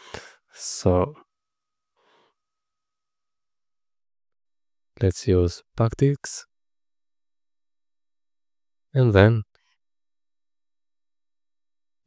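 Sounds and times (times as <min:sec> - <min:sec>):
faint steady tone: 0:00.0 - 0:03.9.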